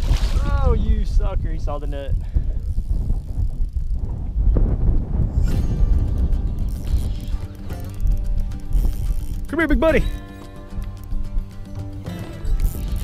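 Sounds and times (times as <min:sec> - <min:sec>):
wind rumbling on microphone: 0:00.0 - 0:11.8
fishing reel drag ticking: 0:01.8 - 0:04.0, 0:06.0 - 0:13.0.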